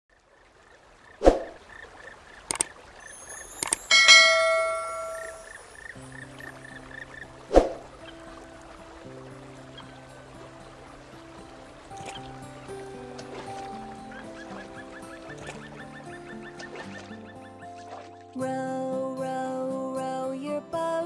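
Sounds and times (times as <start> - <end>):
clicks: 2.4 - 2.7, 3.3 - 5.6
faint repeating chirp: 2.5 - 7.2
gentle instrumental music: 2.7 - 21.0
bell-like ding with sparkling sweep: 3.1 - 5.8.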